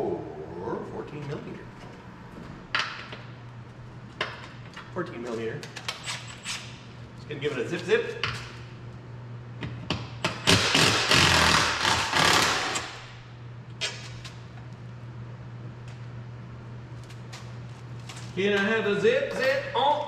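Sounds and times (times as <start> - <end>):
cordless power tool running: 10.5 - 13.1.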